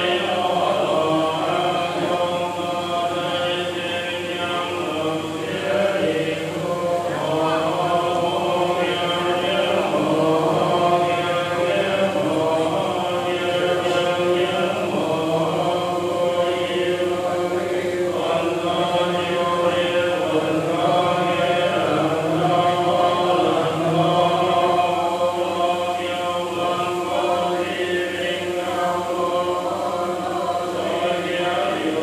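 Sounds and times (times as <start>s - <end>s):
group chanting prayers: 0.0s - 32.0s.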